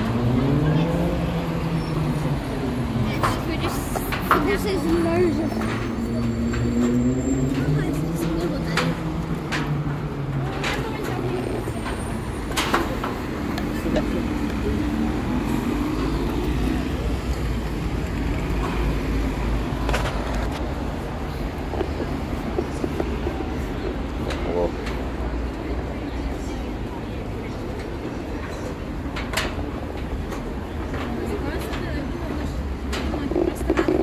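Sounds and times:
city road traffic: 0.0 - 34.0
people talking: 0.2 - 1.6, 2.3 - 6.5, 7.3 - 9.2, 10.4 - 12.1, 12.9 - 15.1, 30.7 - 34.0.

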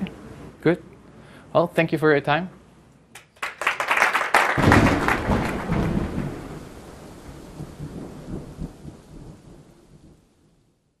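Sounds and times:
people clapping: 3.1 - 6.0
thunder-like rumble: 4.6 - 10.3.

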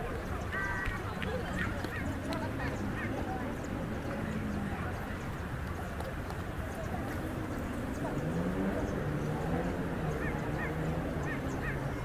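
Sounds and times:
background murmur: 0.0 - 12.0.

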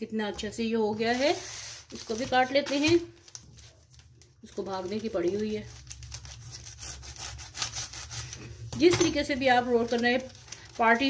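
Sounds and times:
knife sawing through bread: 5.7 - 8.5.

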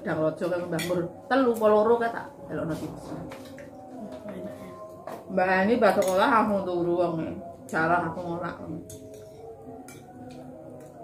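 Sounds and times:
spoon clicking against plate: 8.8 - 11.0.

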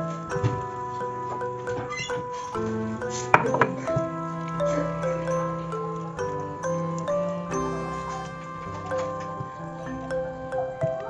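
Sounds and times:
melody of sustained notes: 0.0 - 11.0.

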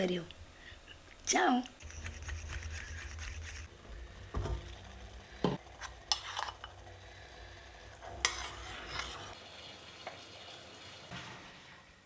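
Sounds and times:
metal utensil stirring in saucepan: 5.7 - 6.8, 8.0 - 9.4.

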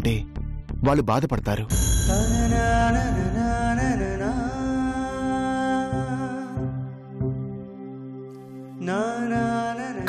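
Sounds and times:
dramatic background music: 1.7 - 8.7.

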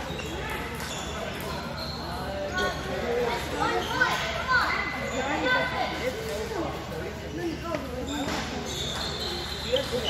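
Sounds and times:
chatter in a busy hall: 0.0 - 10.0.

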